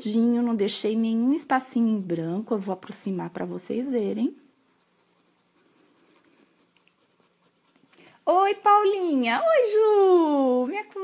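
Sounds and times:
colored pencil scratching on paper: 0.3 - 10.2.

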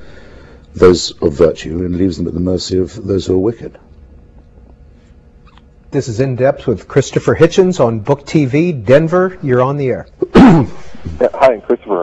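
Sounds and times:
low background hum: 0.0 - 12.0
man talking: 0.7 - 3.8, 11.0 - 12.0.

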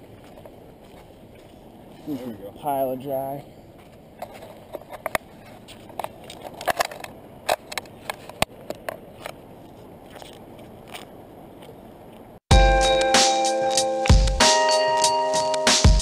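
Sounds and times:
loud background music: 12.5 - 16.0.

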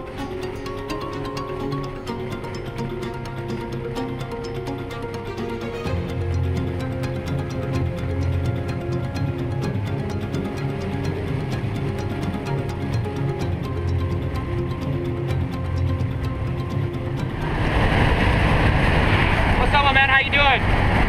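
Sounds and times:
background music sustained notes: 0.0 - 21.0
light aircraft engine in cabin: 17.2 - 21.0.

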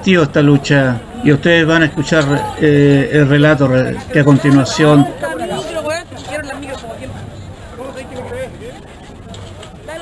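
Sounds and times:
indistinct voices talking: 0.0 - 10.0.

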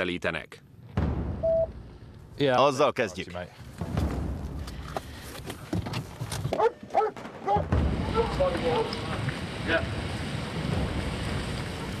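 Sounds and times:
dog barking and whining: 6.6 - 7.6
low rumble: 7.7 - 12.0.

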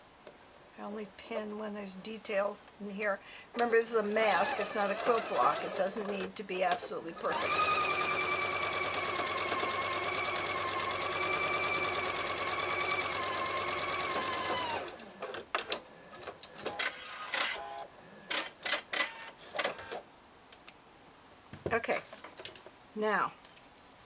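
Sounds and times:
sewing machine stitching: 3.6 - 15.1.

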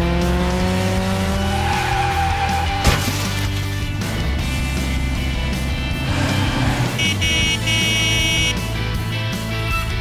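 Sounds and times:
car sound effects: 0.0 - 8.6.

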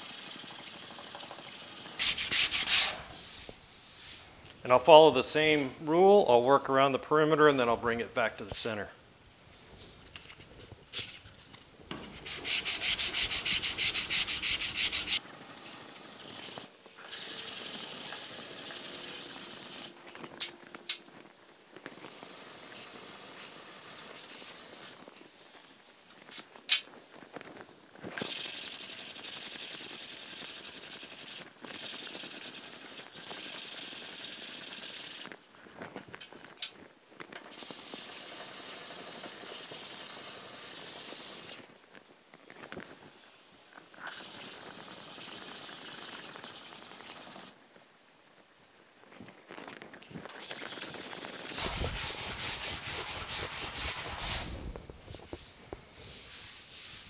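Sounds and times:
sanding block scraping: 2.0 - 4.3, 12.0 - 15.2, 51.0 - 57.0.

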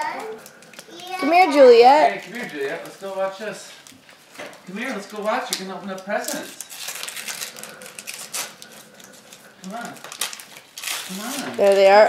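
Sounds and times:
wrapping paper crinkling and tearing: 2.0 - 12.0.

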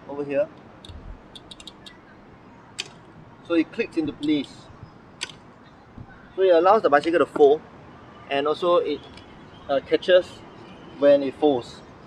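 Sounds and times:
sharp latch click: 0.8 - 2.0, 2.8 - 3.0, 5.2 - 5.4.

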